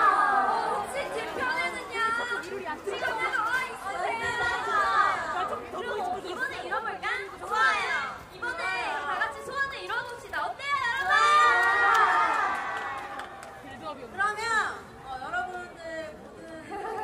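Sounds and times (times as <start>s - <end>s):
voices talking and calling out: 0.0s - 17.0s.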